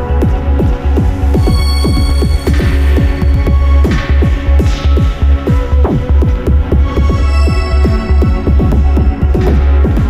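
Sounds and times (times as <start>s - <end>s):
electronic drone music: 0.0s - 10.0s.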